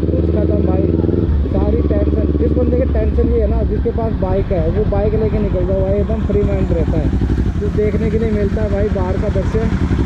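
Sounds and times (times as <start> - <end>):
man's voice: 0.0 - 9.7
motorcycle engine at low revs: 0.0 - 10.0.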